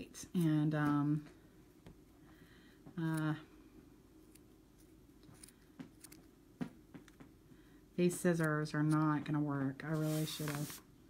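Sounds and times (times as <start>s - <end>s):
scissors snipping yarn: 4.2s - 6.3s, 8.2s - 9.4s.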